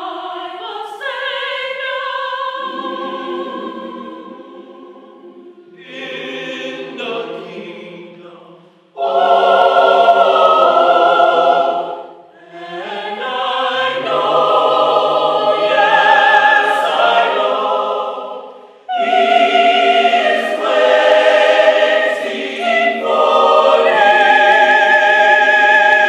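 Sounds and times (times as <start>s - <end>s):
mixed choir singing in harmony: 0.0s - 26.0s.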